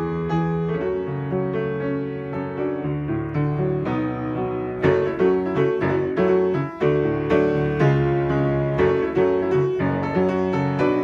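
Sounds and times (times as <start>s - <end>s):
solo piano: 0.0s - 11.0s.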